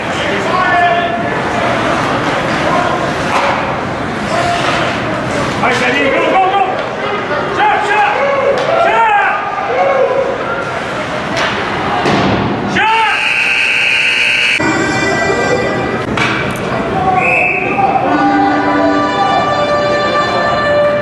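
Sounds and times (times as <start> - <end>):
spectators' voices: 0.0 - 21.0
pucks and sticks thudding: 1.8 - 5.8, 11.2 - 12.6, 16.0 - 16.8
referee whistle: 13.0 - 14.6, 17.1 - 17.8
arena music: 14.6 - 21.0.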